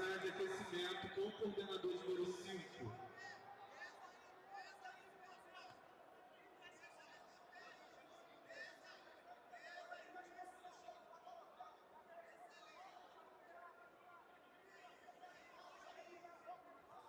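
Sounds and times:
hubbub of many voices: 0:00.0 - 0:17.0.

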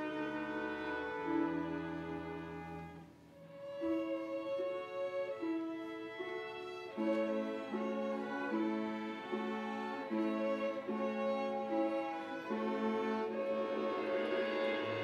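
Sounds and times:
bowed strings melody: 0:00.0 - 0:15.0
lower strings repeating notes: 0:07.0 - 0:15.0.

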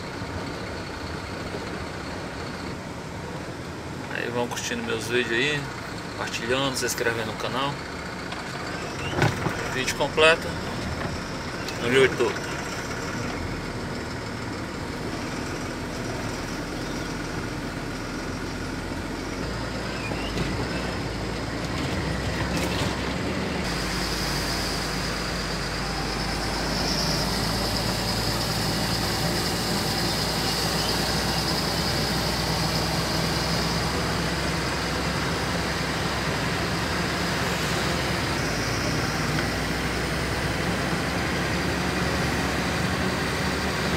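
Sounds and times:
road noise: 0:00.0 - 0:43.9
vehicle engine: 0:00.0 - 0:43.9.

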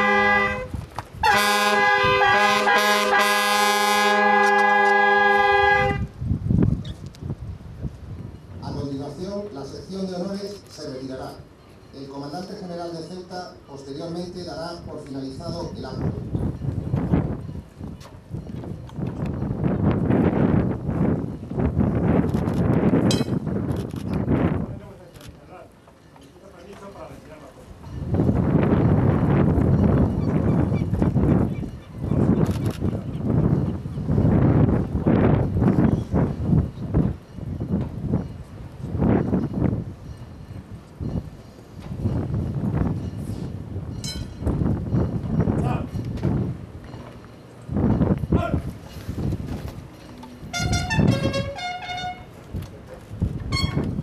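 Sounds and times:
wind buffeting microphone: 0:00.0 - 0:02.7, 0:04.2 - 0:09.4, 0:14.7 - 0:25.0, 0:27.7 - 0:54.0.

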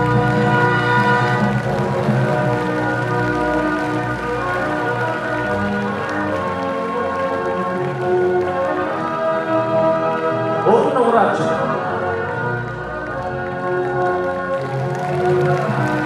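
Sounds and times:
light clapping: 0:00.0 - 0:09.6, 0:12.6 - 0:16.0.

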